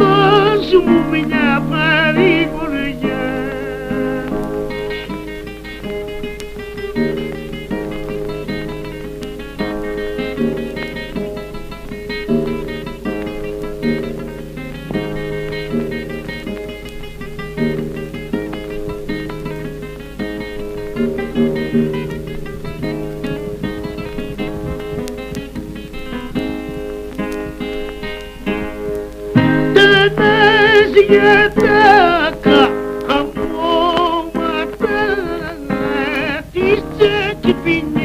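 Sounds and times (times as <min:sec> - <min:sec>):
plucked string instruments strumming: 0:00.0 - 0:38.0.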